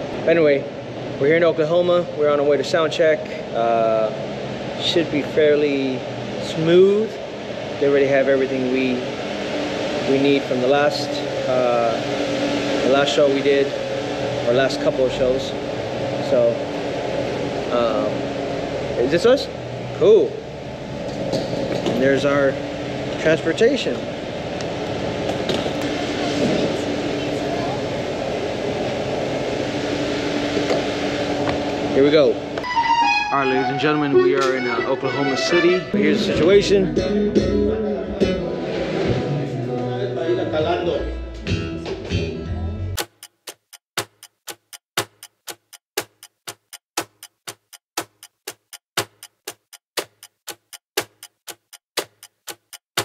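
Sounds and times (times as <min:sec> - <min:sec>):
metronome clicks: 0:43.0 - 0:53.0.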